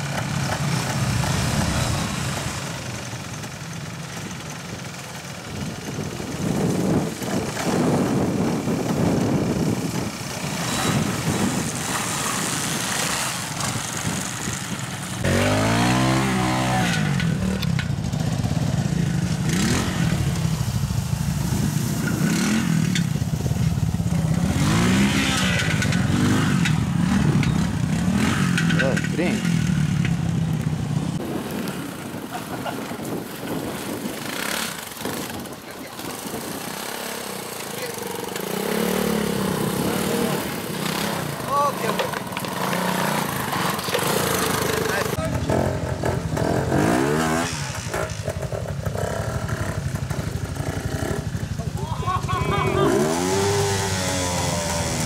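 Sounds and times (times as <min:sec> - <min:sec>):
motorcycle engines revving: 0:00.0 - 0:55.0.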